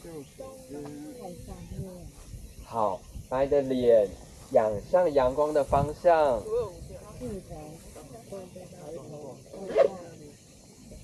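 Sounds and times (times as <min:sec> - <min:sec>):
faint steady hiss: 0:00.0 - 0:11.0
voices murmuring: 0:00.0 - 0:11.0.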